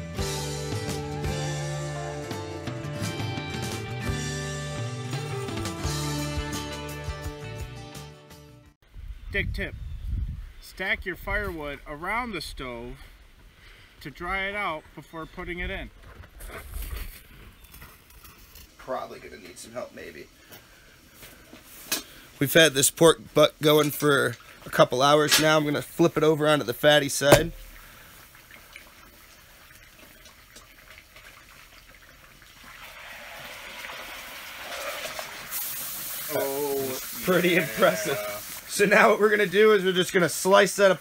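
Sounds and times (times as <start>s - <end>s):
wind rumble on microphone: 8.9s - 11.6s
meat sizzling in a pot: 30.8s - 41.0s.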